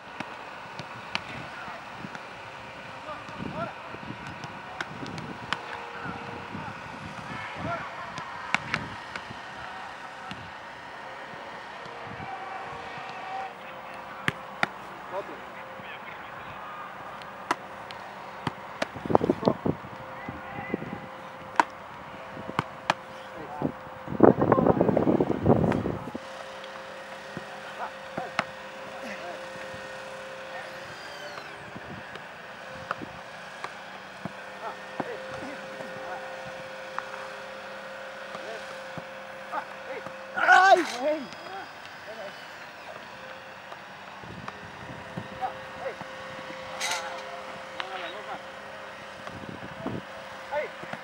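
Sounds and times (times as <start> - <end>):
engine hum: 0.0 - 51.0
ball thuds: 13.8 - 15.0, 17.2 - 19.6, 21.4 - 21.8, 22.5 - 23.3
person shouting: 40.3 - 41.6.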